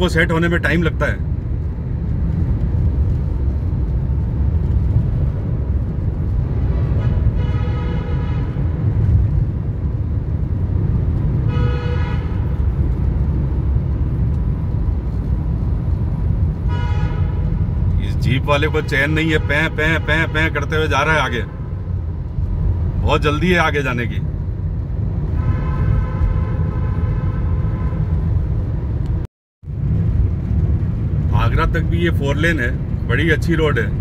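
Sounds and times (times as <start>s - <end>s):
car road and engine rumble: 0.0s - 34.0s
car horn honking: 7.0s - 8.7s, 11.4s - 12.6s, 16.6s - 17.6s, 18.6s - 21.9s, 25.4s - 28.3s.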